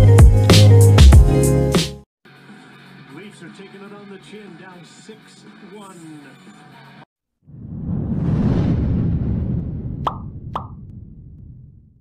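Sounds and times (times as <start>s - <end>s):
low rumbling whoosh: 7.5s - 12.0s.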